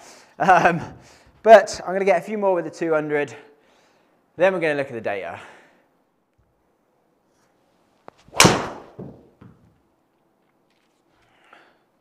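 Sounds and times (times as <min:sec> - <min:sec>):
golf driver striking ball: 0:08.4 - 0:09.1.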